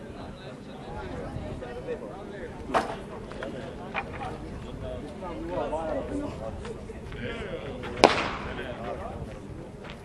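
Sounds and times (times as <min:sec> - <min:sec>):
starter's pistol crack: 0:08.0 - 0:08.5.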